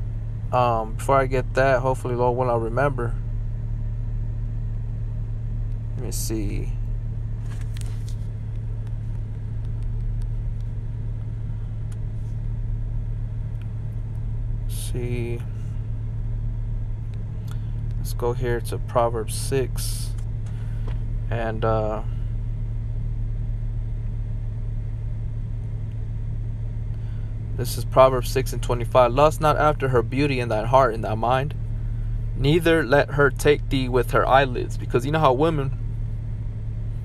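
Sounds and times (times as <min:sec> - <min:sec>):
constant hum: 0:00.0 - 0:37.0
steady low rumble: 0:00.0 - 0:37.0.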